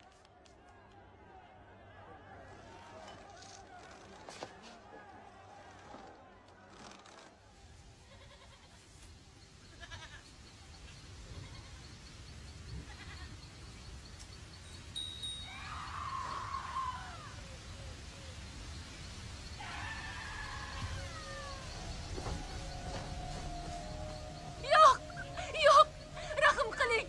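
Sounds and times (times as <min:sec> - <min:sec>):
faint low rumble: 0:20.5 - 0:27.0.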